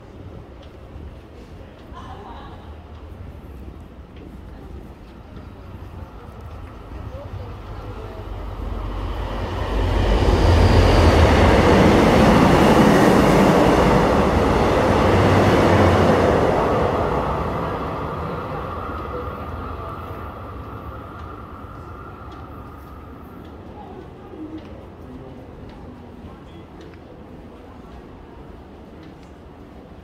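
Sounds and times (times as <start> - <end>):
train rumbling past: 0.0 - 30.0.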